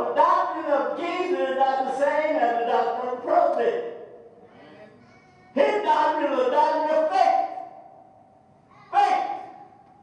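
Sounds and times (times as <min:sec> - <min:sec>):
man shouting exclamation: 0:08.8 - 0:09.6.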